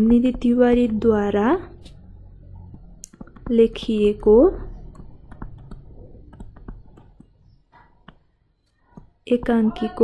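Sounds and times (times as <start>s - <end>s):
stylus tapping on tablet: 0.0s - 1.0s, 2.6s - 10.0s
low hum: 0.0s - 8.8s.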